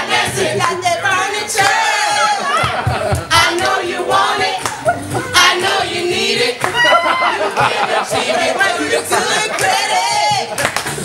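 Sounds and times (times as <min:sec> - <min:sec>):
voices chanting and singing: 0:00.0 - 0:10.8
backing track with pulsing beat: 0:00.0 - 0:11.0
loud shout or clap: 0:06.6 - 0:07.4.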